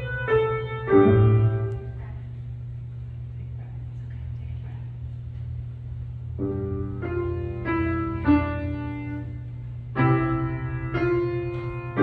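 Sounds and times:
piano chords ringing: 0.0s - 2.3s, 6.4s - 12.0s
low steady hum: 0.0s - 12.0s.

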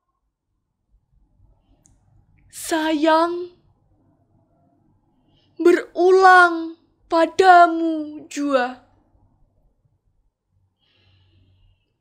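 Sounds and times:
faint breath: 4.1s - 5.6s, 10.6s - 12.0s.

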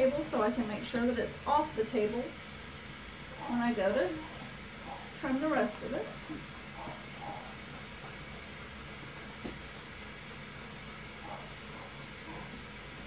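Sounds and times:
grooming shears snipping: 0.0s - 1.9s, 3.3s - 8.2s, 10.6s - 13.0s
low room hum: 0.0s - 13.0s.

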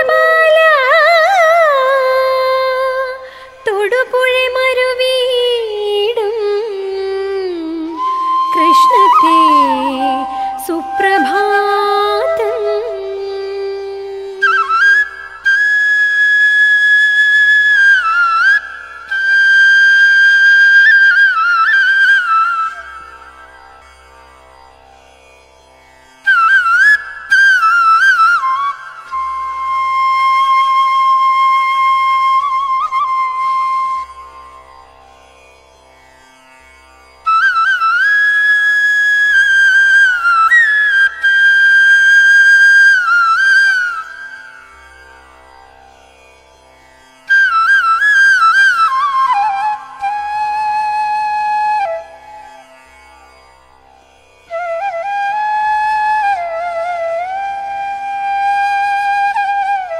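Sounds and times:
flute melody: 7.8s - 22.8s, 26.3s - 34.4s, 47.3s - 52.6s, 54.5s - 59.9s
faint sustained accompaniment: 8.0s - 14.4s.

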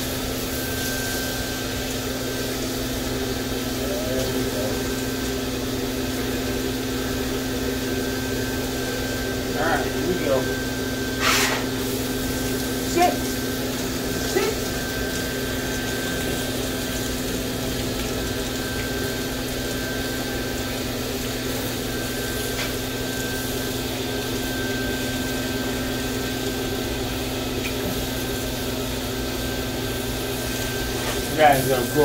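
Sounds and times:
hose sprayer spraying water: 0.0s - 32.0s
motor hum with high whine: 0.0s - 32.0s.

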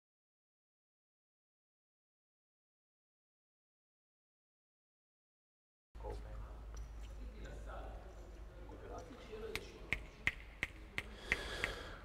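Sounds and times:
quiet sharp clicks: 9.0s - 11.9s.

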